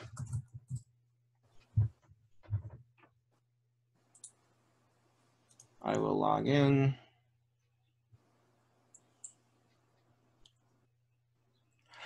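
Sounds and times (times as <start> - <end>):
person speaking: 5.6 - 7.1.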